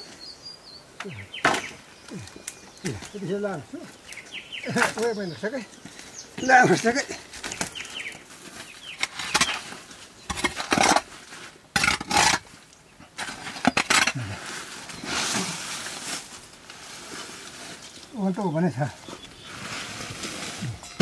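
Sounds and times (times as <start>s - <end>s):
rustling: 1.3s - 21.0s
hoe scraping dirt floor: 6.4s - 12.6s, 13.2s - 18.0s, 19.0s - 21.0s.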